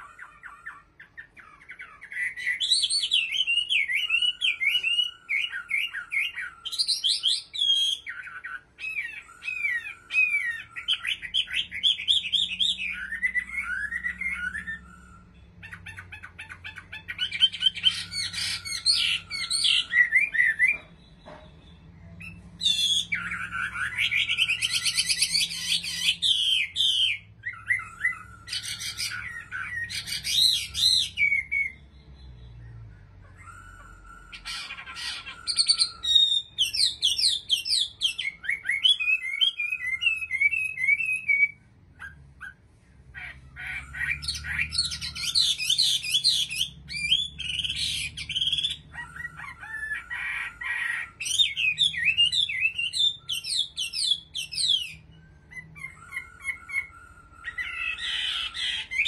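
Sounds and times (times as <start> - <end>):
bird singing whistled trills: 0.0 - 42.6, 43.6 - 59.0.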